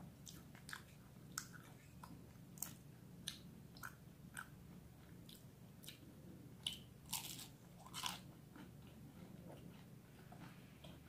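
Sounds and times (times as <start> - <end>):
crunchy food being chewed: 0.2 - 11.0.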